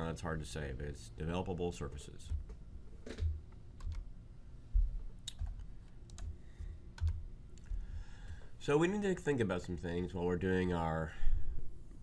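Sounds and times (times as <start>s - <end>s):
computer keys clicking: 3.2s - 4.1s, 5.2s - 8.4s
soft low thumps: 4.7s - 5.6s.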